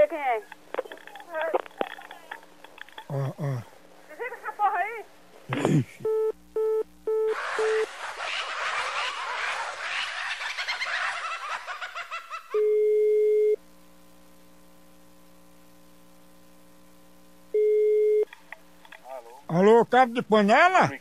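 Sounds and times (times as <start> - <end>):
low telephone line hum: 0.0 - 7.9, 10.8 - 21.0
laughter: 8.3 - 12.6
busy signal beeps: 12.6 - 13.6, 17.6 - 18.3.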